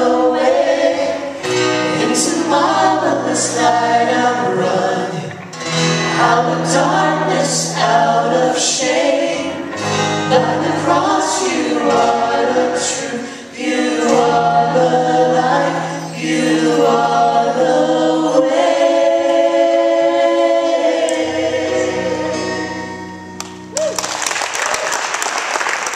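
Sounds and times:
group singing worship song: 0:00.0 - 0:23.2.

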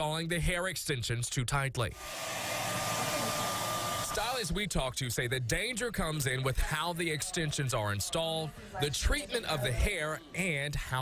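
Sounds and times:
hair dryer running: 0:02.0 - 0:04.4.

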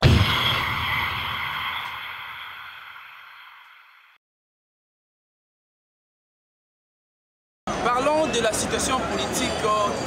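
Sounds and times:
sudden hit: 0:00.0 - 0:04.2.

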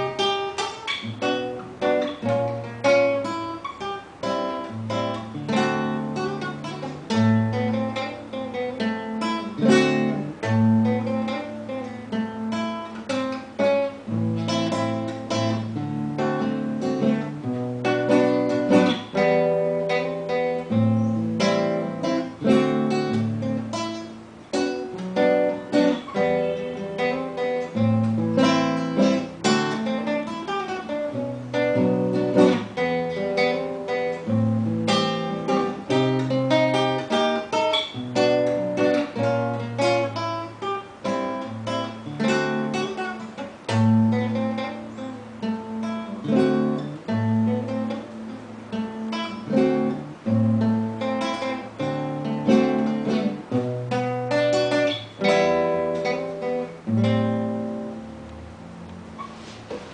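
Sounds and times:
classical acoustic guitar: 0:00.0 - 0:59.9.

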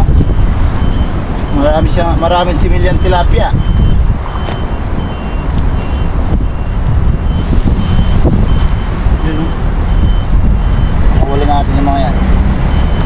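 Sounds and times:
vehicle reversing alarm beeping: 0:00.0 - 0:13.0.

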